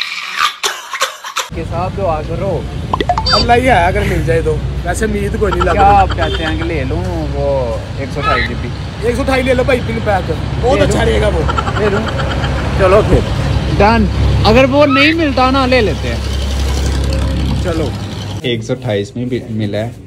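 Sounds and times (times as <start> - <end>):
men talking: 1.5 - 16.3, 17.4 - 20.0.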